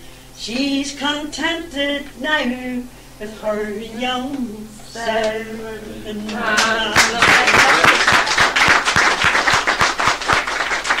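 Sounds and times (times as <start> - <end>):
small group clapping: 6.2 - 11.0.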